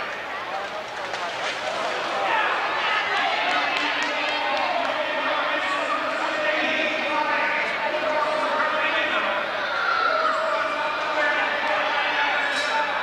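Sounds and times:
crowd din echoing in arena: 0.0s - 13.0s.

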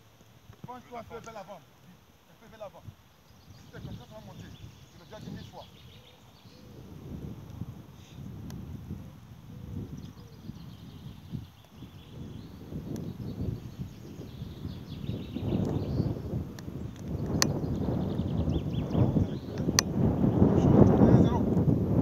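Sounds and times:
wind rumbling on microphone: 2.8s - 22.0s.

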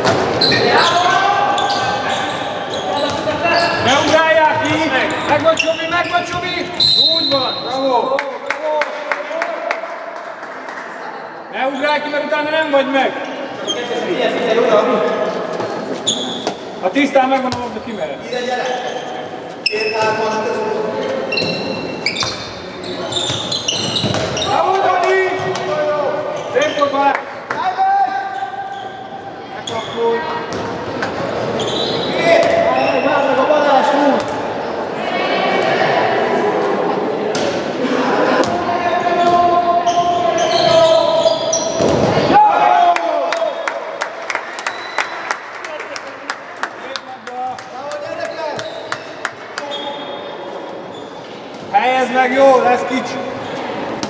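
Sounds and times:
players shouting in hall: 37.8s - 44.0s.

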